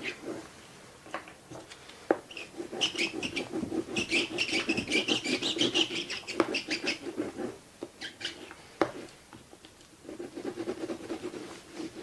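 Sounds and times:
oil pastel scratching on paper: 2.3s - 9.1s, 10.0s - 12.0s.

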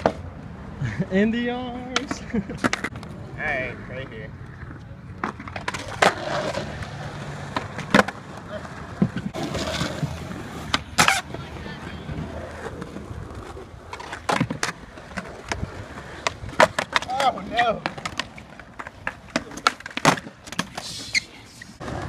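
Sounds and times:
skateboards popping and landing: 0.0s - 1.0s, 1.6s - 22.0s
skateboard wheels rolling on concrete: 0.0s - 22.0s.

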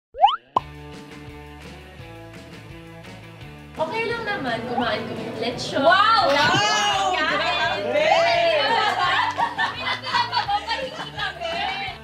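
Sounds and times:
rising cartoon plop glide: 0.1s - 0.7s
upbeat intro music: 0.1s - 3.9s.

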